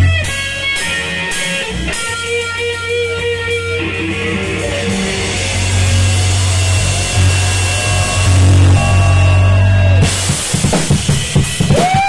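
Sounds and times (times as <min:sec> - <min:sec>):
distorted guitar and bass wash: 0:00.0 - 0:12.0
steady low bass note: 0:03.8 - 0:10.6.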